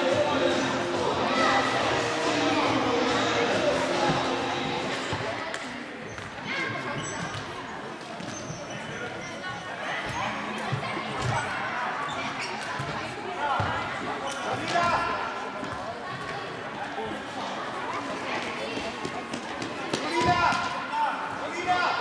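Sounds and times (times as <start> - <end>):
children and spectators chattering: 0.0 - 22.0
football bouncing on hall floor: 10.0 - 11.5, 12.6 - 16.4, 18.8 - 20.8.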